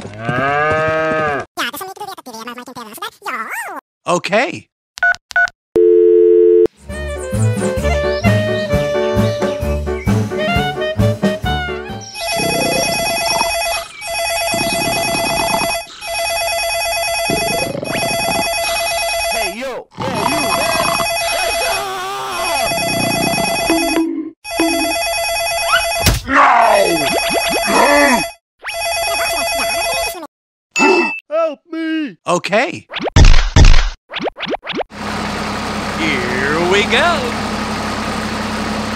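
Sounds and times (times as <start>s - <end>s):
low voice-like sound effects: 20.0s - 22.8s, 29.0s - 30.3s.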